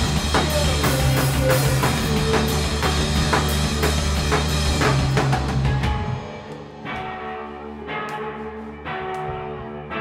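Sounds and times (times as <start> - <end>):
electric guitars ringing chords: 0.0 - 10.0.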